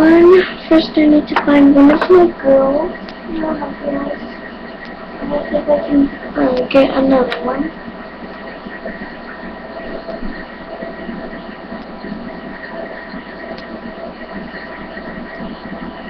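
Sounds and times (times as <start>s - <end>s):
faint humming tones: 0.0s - 16.0s
microphone hiss: 0.0s - 16.0s.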